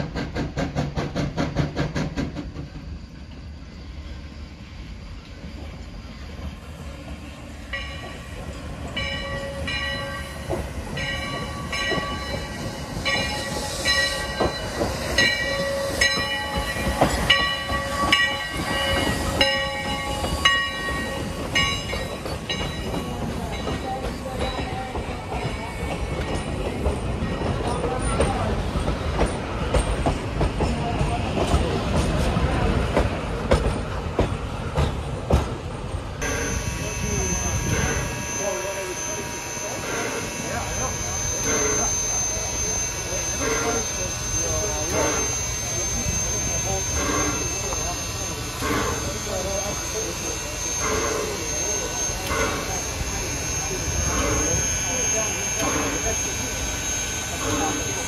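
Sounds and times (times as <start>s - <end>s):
locomotive bell ringing: 7.7s - 28.4s, 36.2s - 58.0s.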